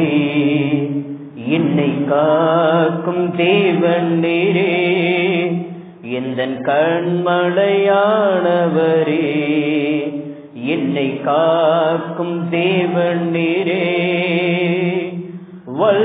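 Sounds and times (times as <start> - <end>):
group singing worship song: 0.0 - 16.0.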